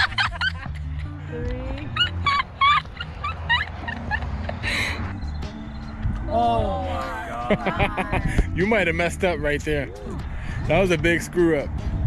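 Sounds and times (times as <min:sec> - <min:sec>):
high-pitched laughter: 0:00.0 - 0:04.9
background music: 0:00.0 - 0:12.0.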